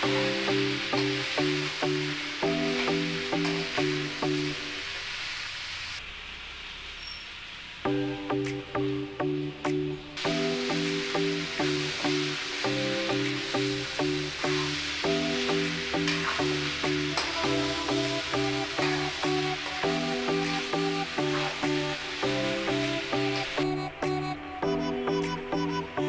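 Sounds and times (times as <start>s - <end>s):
background music with beat: 0.0s - 4.7s, 7.9s - 26.0s
vegetables sizzling in a pan: 0.0s - 26.0s.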